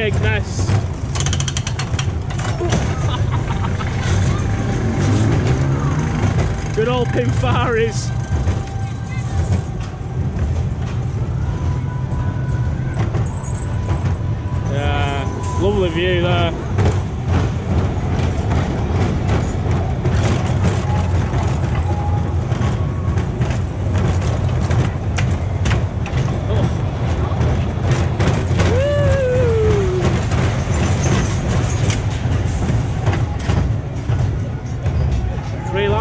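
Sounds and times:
roller coaster rumbling and rattling: 0.0s - 36.0s.

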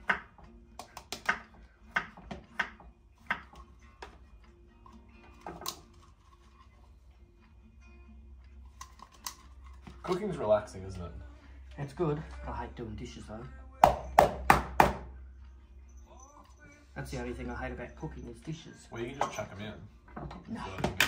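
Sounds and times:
knife chopping on wooden board: 0.0s - 3.6s
faint background music: 0.0s - 21.0s.

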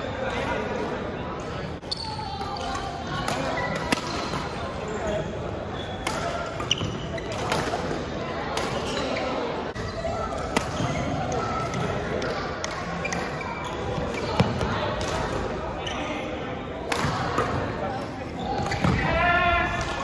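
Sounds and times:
hum of voices in gym hall: 0.0s - 20.0s.

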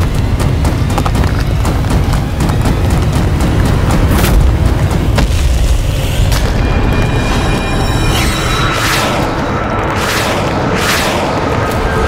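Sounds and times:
dramatic music tones: 0.0s - 12.0s.

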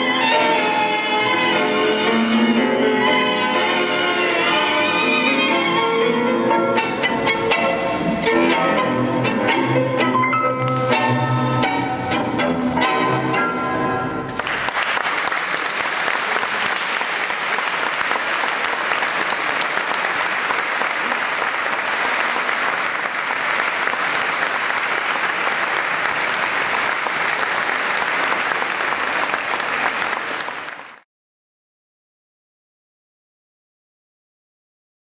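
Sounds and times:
audience applauding: 14.3s - 31.0s.

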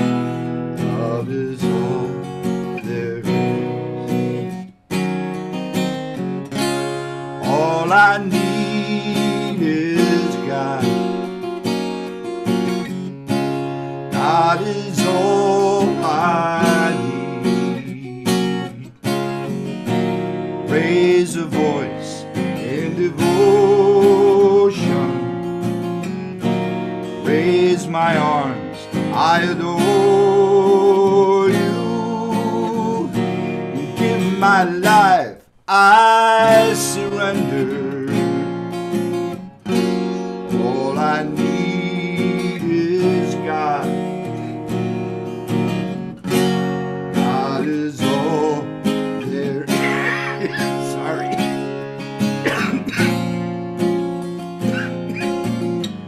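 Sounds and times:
man singing: 0.0s - 4.6s, 7.4s - 11.8s, 14.1s - 20.0s, 20.6s - 25.6s, 27.0s - 39.1s, 39.7s - 45.8s, 47.1s - 51.7s
strummed acoustic guitar: 0.0s - 56.0s.

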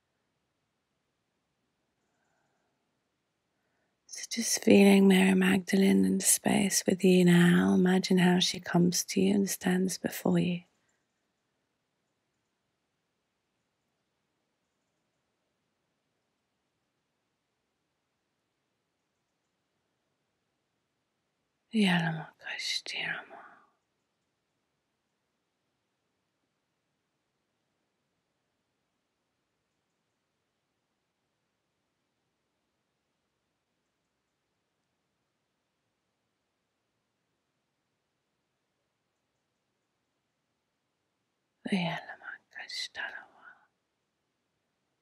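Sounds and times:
woman whispering: 4.1s - 10.7s, 21.8s - 23.8s, 41.7s - 43.7s
breathy whisper with mouth click: 21.8s - 23.8s, 41.7s - 43.7s.

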